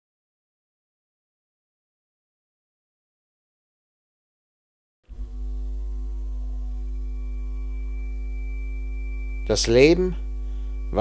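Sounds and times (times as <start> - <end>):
ambient drone music: 5.1 - 11.0
thin high tone: 5.1 - 11.0.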